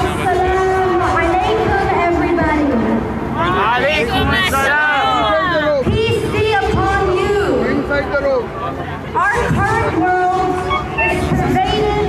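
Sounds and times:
crowd babble: 0.0 - 12.0
woman reciting aloud: 9.2 - 12.0.

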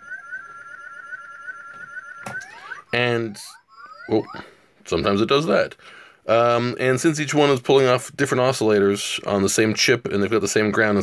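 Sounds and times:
stuttering electronic toy chirp: 0.0 - 4.5
rising electronic glides: 0.0 - 4.6.

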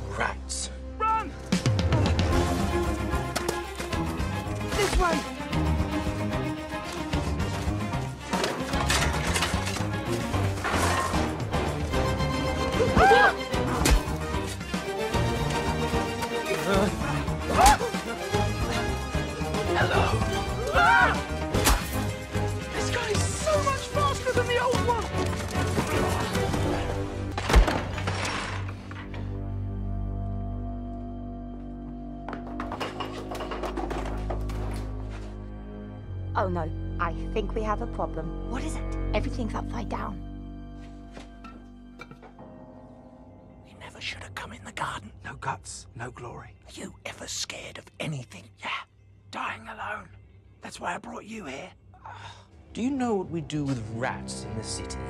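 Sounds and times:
fast chase film score: 0.0 - 29.6
sharp crashes and whacks: 21.5 - 22.1.

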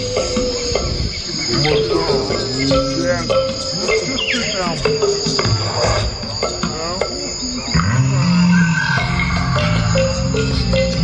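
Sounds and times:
animal calls with sliding whistles: 0.0 - 10.6
insect chirring: 0.0 - 11.0.

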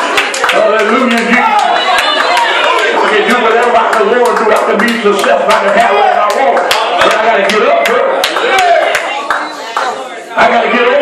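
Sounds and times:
rhythmic hand clapping: 0.0 - 10.0.

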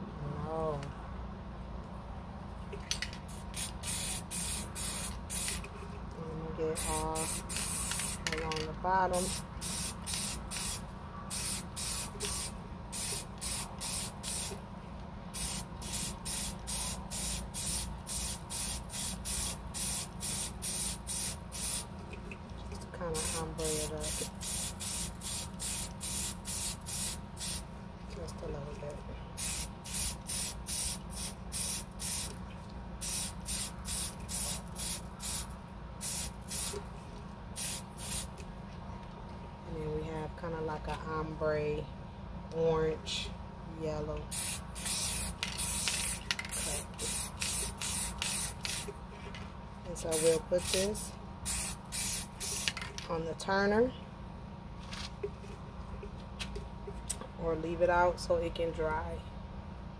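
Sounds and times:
spray paint can hissing: 3.3 - 5.7, 6.8 - 8.5, 9.2 - 14.6, 15.4 - 21.9, 23.2 - 27.6, 29.4 - 32.4, 33.0 - 36.8, 37.6 - 38.3, 44.3 - 48.9, 50.0 - 50.9, 51.5 - 52.9.

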